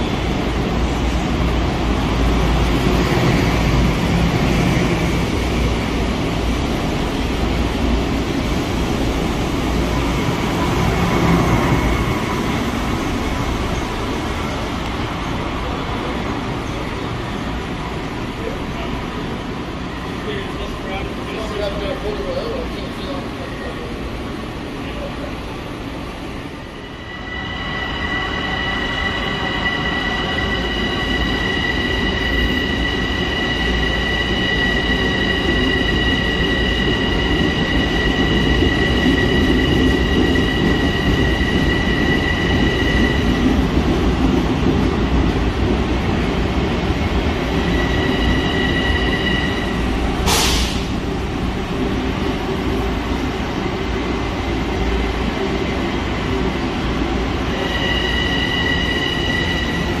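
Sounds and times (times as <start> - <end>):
train rumble: 0.0 - 60.0.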